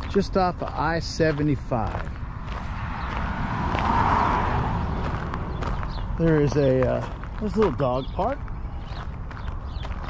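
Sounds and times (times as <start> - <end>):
tyres crunching on gravel: 0.0 - 10.0
vehicle low rumble: 0.0 - 10.0.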